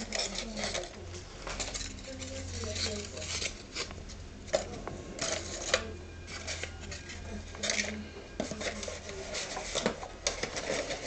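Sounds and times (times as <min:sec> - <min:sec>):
cardboard and foam rustling: 0:02.0 - 0:05.7, 0:06.3 - 0:11.0.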